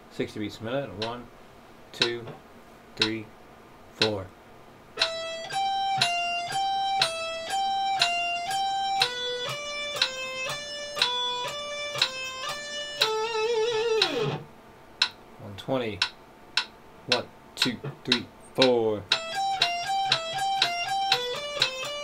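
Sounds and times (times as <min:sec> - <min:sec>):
metronome clicking: 0:01.0 - 0:01.2, 0:02.0 - 0:02.2, 0:03.0 - 0:03.2, 0:04.0 - 0:04.2, 0:05.0 - 0:14.4, 0:15.0 - 0:15.2, 0:16.0 - 0:22.0
electric guitar single notes: 0:05.0 - 0:14.5, 0:19.1 - 0:22.0.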